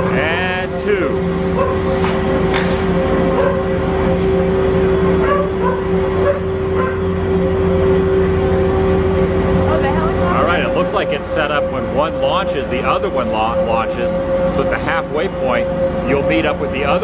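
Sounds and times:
drive machinery humming: 0.0 - 17.0.

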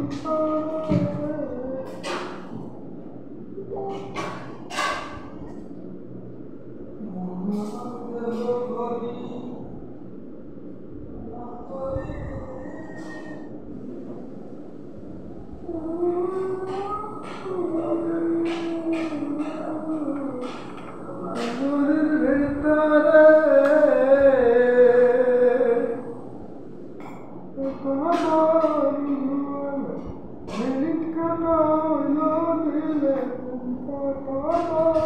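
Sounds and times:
man singing long notes: 0.0 - 2.6, 15.6 - 26.2, 27.6 - 35.0.

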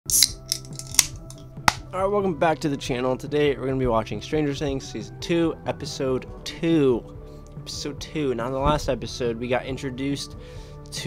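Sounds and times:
can ring-pull cracking open: 0.1 - 1.8
background music: 0.1 - 11.0.

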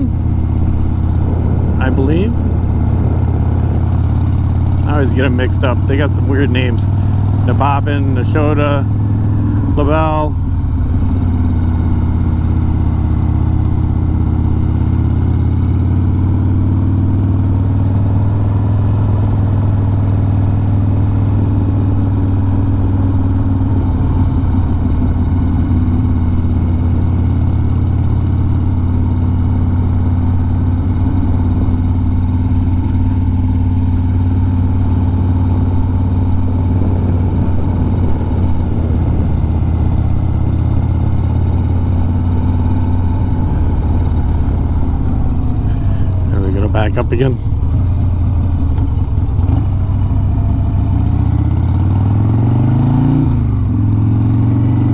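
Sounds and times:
motorcycle engine running steadily: 0.0 - 54.9.

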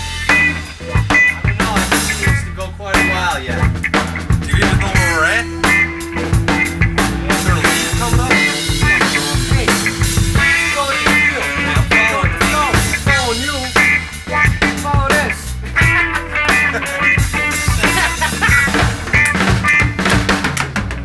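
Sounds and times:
drum kit beat: 0.0 - 21.0
electric guitar solo: 4.8 - 14.8, 15.8 - 20.0.

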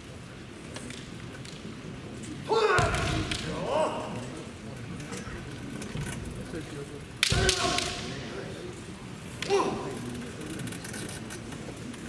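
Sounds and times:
hall background noise: 0.0 - 12.0
person shouting: 2.5 - 4.2, 7.3 - 7.9, 9.4 - 9.9
bamboo sword strike crack: 7.2 - 8.1.

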